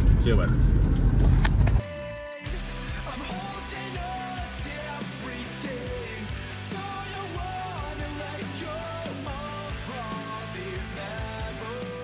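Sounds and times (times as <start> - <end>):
music: 1.0 - 12.0.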